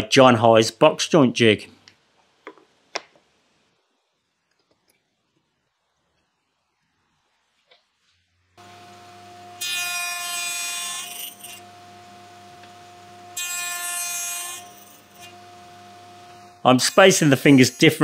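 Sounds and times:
saw blade cutting wood: 0:08.6 - 0:11.8, 0:12.6 - 0:18.0
table saw running: 0:08.6 - 0:18.0.

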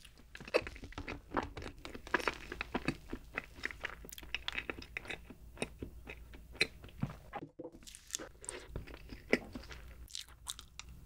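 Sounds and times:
chewing cake: 0:00.0 - 0:07.2, 0:07.8 - 0:11.0.

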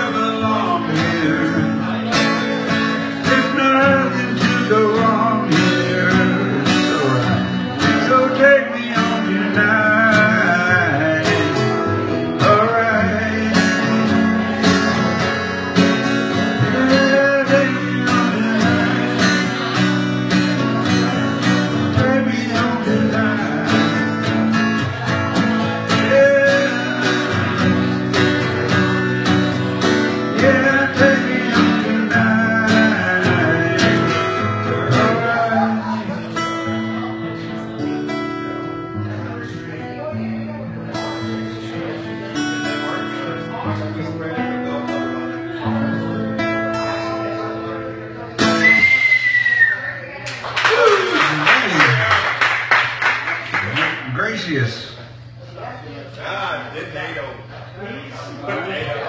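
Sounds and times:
man singing: 0:00.0 - 0:20.0, 0:20.6 - 0:37.6
strummed acoustic guitar: 0:00.0 - 0:49.6, 0:50.9 - 0:55.4.

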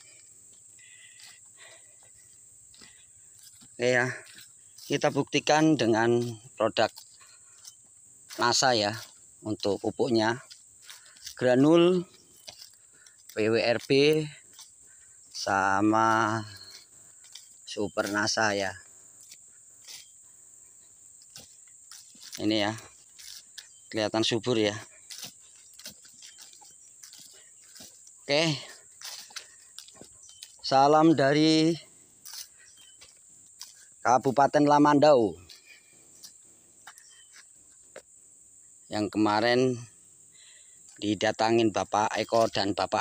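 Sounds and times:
footsteps on grass: 0:00.0 - 0:38.2, 0:40.9 - 0:43.0
high-pitched insect chirring: 0:00.0 - 0:43.0.

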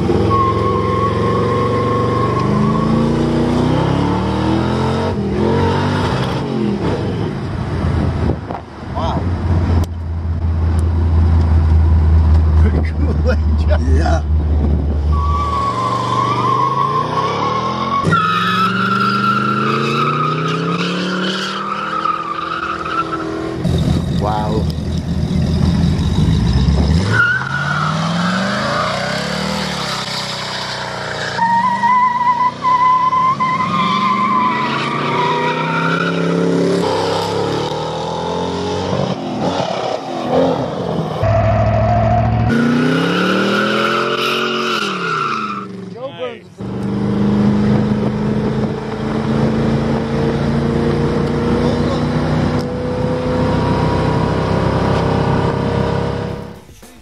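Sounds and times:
car engine revving hard: 0:00.0 - 0:07.2, 0:25.4 - 0:31.4, 0:41.6 - 0:45.9, 0:46.6 - 0:57.0
cars accelerating: 0:00.0 - 0:57.0.

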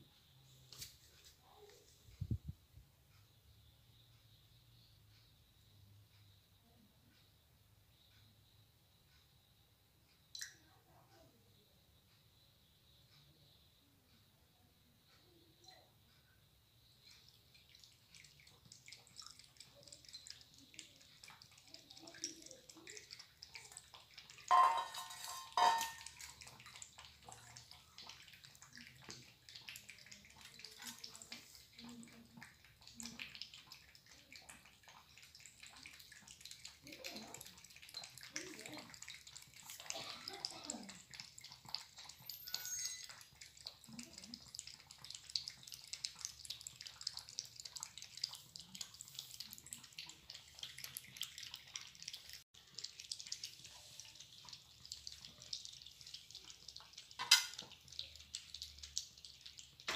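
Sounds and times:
cats lapping milk: 0:17.0 - 0:59.9.

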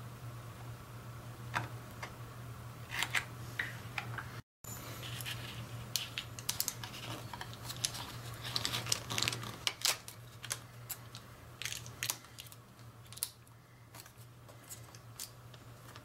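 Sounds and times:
paper backing peeled away: 0:05.0 - 0:10.6
foil tape crinkling and clicking: 0:05.2 - 0:16.0.

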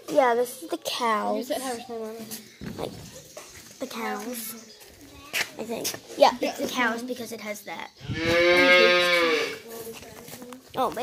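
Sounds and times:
cow mooing: 0:08.1 - 0:09.6.

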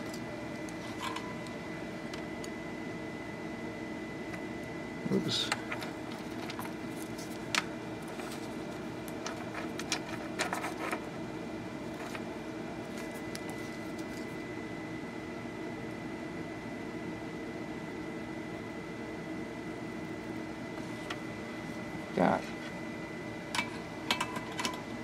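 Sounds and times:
steady background hum: 0:00.0 - 0:25.0.

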